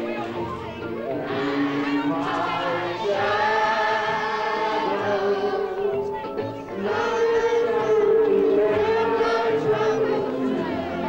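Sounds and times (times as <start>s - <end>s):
crowd singing: 0.0s - 11.0s.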